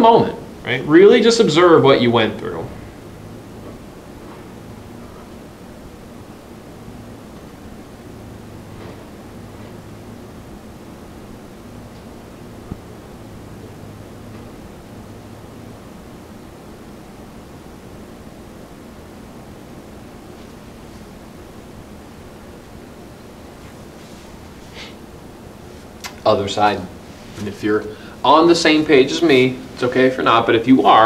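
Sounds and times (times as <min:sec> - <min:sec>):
faint low hum: 0:00.0 - 0:31.0
room tone hiss: 0:00.0 - 0:31.0
small click: 0:26.0 - 0:26.2.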